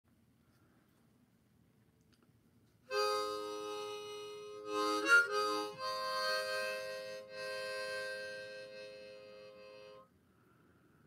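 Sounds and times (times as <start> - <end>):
harmonica chord: 2.9 - 10.1.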